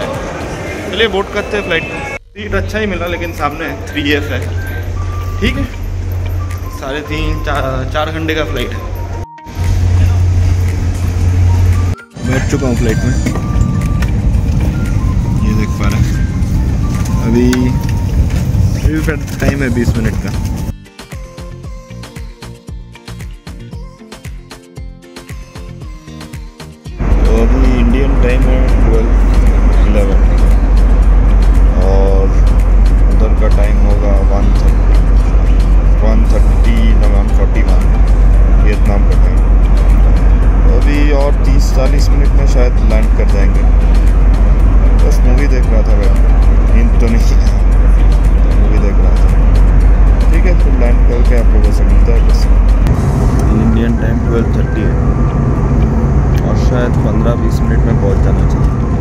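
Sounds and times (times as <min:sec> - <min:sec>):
airliner cabin rumble: 0:03.7 - 0:20.7, 0:27.0 - 0:59.0.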